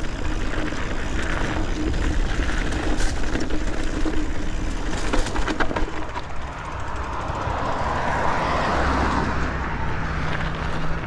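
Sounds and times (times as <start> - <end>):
car tyres passing on road: 0.0 - 11.0.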